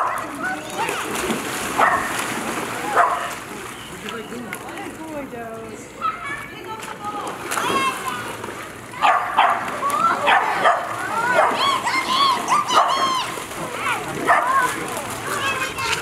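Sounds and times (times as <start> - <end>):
dogs barking: 0.0 - 0.4, 1.8 - 2.2, 2.8 - 3.4, 9.0 - 13.3, 14.2 - 14.7
splashing in shallow water: 0.0 - 5.3, 6.2 - 16.0
people's voices: 0.0 - 16.0.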